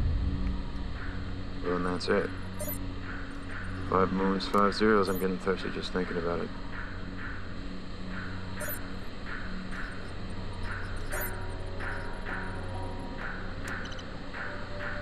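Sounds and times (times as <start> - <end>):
steady low hum: 0.0 - 15.0
short electronic chirp: 2.6 - 2.8, 8.6 - 8.8, 10.6 - 12.2.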